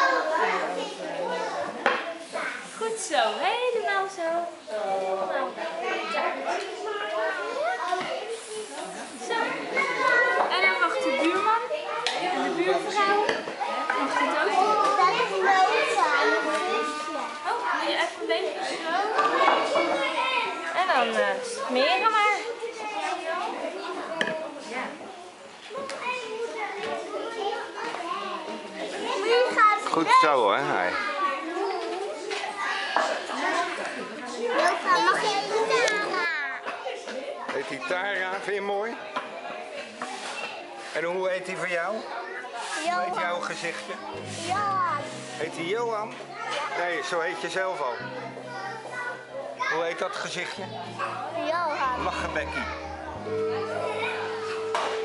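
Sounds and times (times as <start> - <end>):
young children talking and calling out: 0.0 - 38.2, 41.9 - 55.0.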